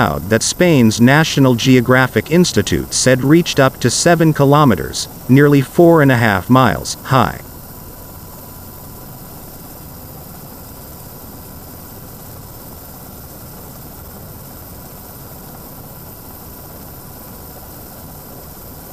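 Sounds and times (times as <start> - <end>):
steady low noise: 0.0 - 8.1
faint steady tone: 0.0 - 18.9.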